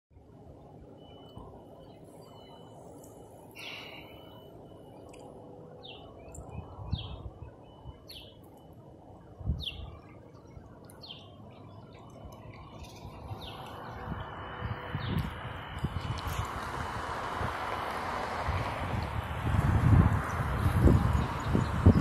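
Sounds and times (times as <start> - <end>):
bird chirping: 1.0 - 4.4, 5.8 - 8.7, 9.5 - 14.1.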